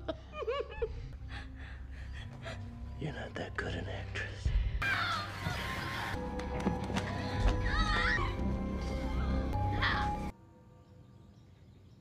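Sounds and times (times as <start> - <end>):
tense film score: 0.8 - 11.0.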